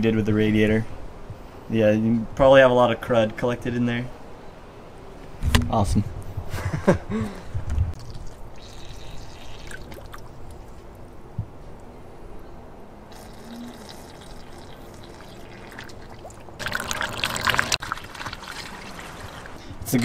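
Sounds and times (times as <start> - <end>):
water trickling through a funnel: 8.0 - 10.6, 13.1 - 19.6.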